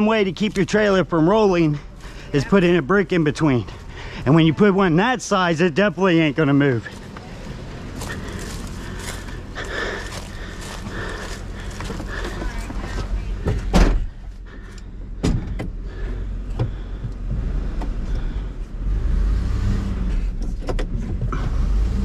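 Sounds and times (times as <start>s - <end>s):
truck engine idling: 0.0s - 18.9s
car door shutting: 13.4s - 14.1s.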